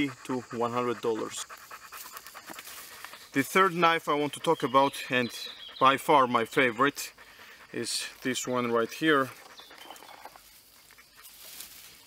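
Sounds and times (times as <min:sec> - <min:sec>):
quiet woodland ambience: 0:00.0 - 0:12.0.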